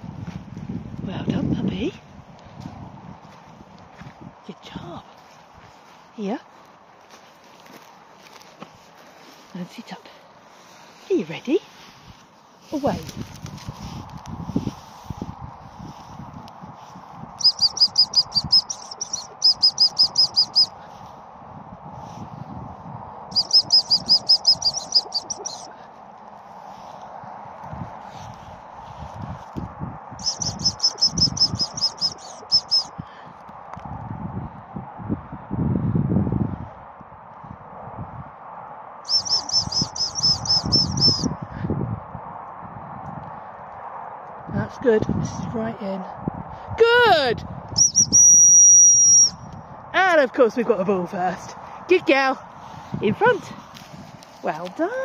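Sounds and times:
dog whistle high pips: 0:17.4 - 0:20.8, 0:23.4 - 0:25.7, 0:30.2 - 0:32.9, 0:39.1 - 0:41.3, 0:47.8 - 0:49.4.

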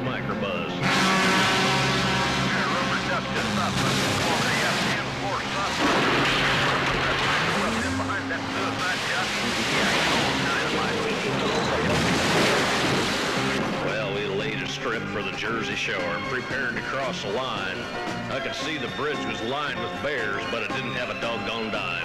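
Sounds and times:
backing music: 0:00.0 - 0:22.0
truck engines running: 0:00.0 - 0:22.0
rushing road noise: 0:00.8 - 0:15.4
voices: 0:02.3 - 0:12.2, 0:13.8 - 0:22.0.

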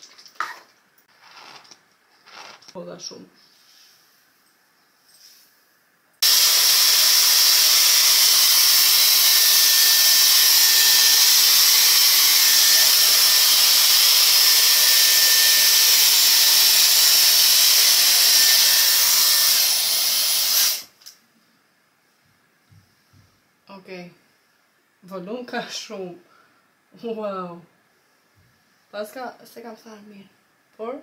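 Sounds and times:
hot-air styler blowing: 0:06.2 - 0:21.0.

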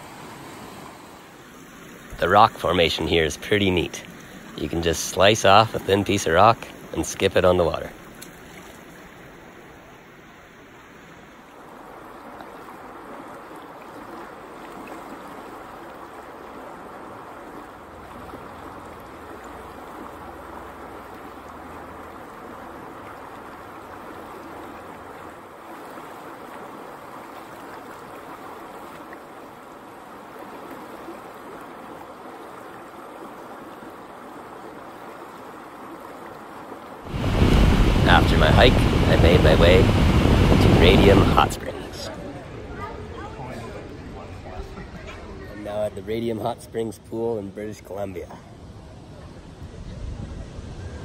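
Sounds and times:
river rushing over rocks: 0:32.8 - 0:42.2.

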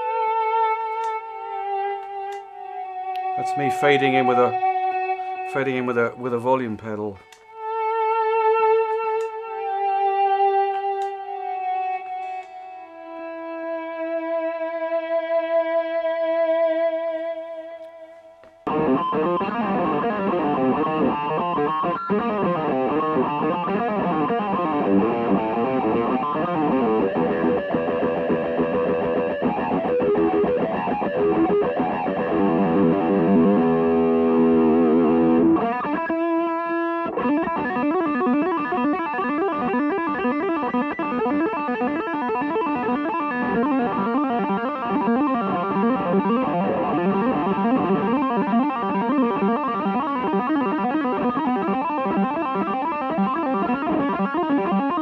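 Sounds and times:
distorted electric guitar: 0:00.0 - 0:55.0.

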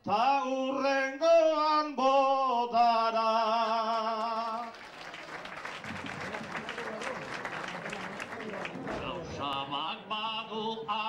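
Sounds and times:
audience clapping: 0:03.7 - 0:09.6
crowd voices: 0:04.7 - 0:11.0.

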